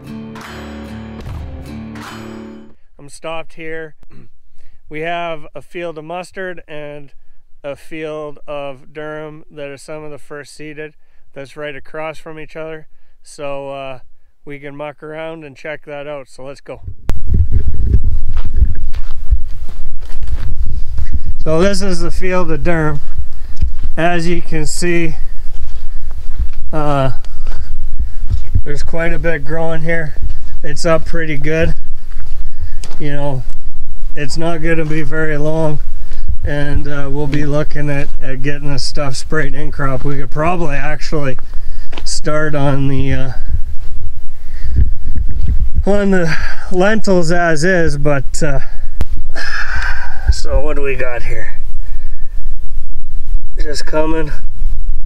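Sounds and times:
wind buffeting microphone: 16.8s - 55.0s
footsteps on soil: 17.1s - 46.3s
man's voice: 21.4s - 23.1s, 23.9s - 25.3s, 26.7s - 27.3s, 28.5s - 31.8s, 32.9s - 33.5s, 34.2s - 43.5s, 45.8s - 48.7s, 50.3s - 51.6s, 53.6s - 54.5s.

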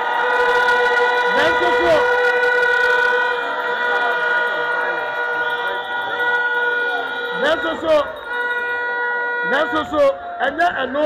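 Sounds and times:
ringing drone over loudspeakers: 0.0s - 11.0s.

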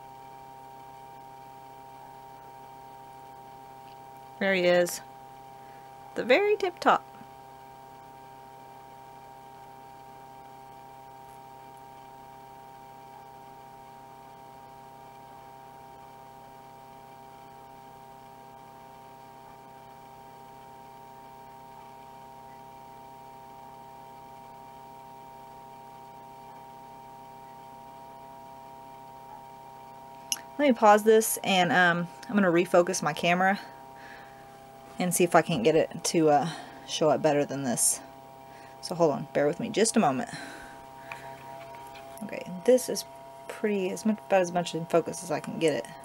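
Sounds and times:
steady electrical hum: 0.0s - 46.0s.

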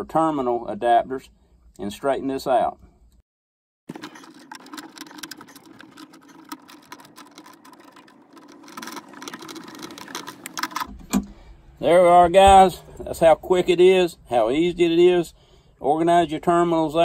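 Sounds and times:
steady low hum: 4.9s - 16.8s.

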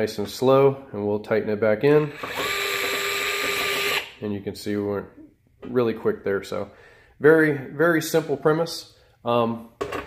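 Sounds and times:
cordless screwdriver whining: 2.0s - 4.1s.

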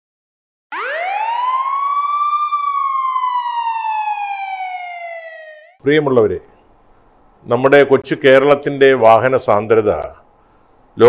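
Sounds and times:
siren wail: 0.7s - 5.8s.

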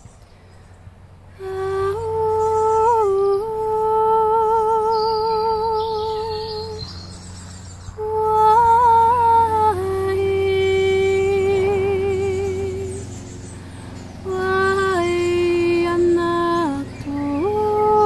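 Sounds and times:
woman singing wordlessly: 1.4s - 7.0s, 8.0s - 13.1s, 14.2s - 18.0s.

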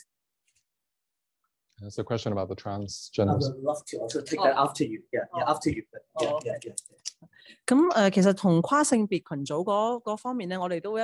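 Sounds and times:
person speaking: 3.1s - 7.2s.

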